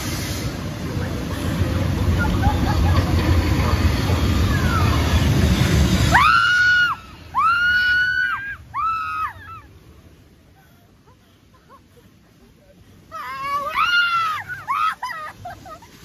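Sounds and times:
low rumble: 0.0s - 7.6s.

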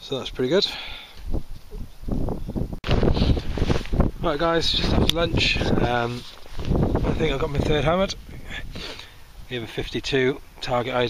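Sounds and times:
wind buffeting microphone: 1.2s - 10.0s.

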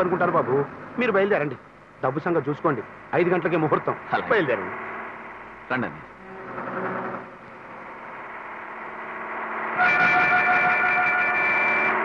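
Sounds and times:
bus engine: 0.0s - 12.0s
loud bus horn: 6.2s - 7.6s, 9.6s - 12.0s.

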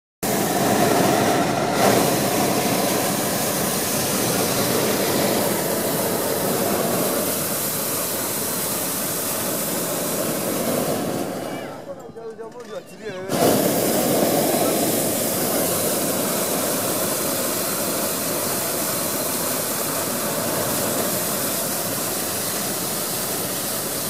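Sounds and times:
propane burner firing: 0.2s - 11.8s, 13.2s - 24.0s.

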